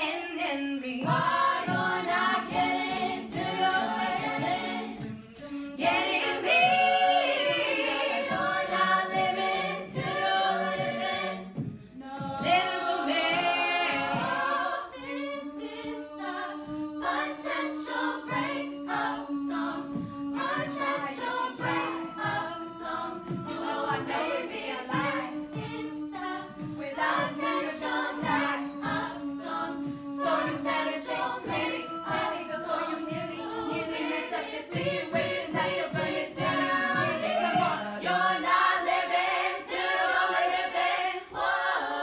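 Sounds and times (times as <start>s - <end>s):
women singing in harmony: 0.0s - 42.0s.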